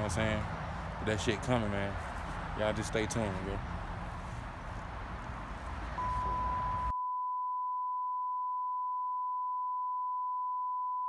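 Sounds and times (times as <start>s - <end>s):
outdoor background noise: 0.0s - 6.9s
pure steady beep tone: 6.0s - 11.0s.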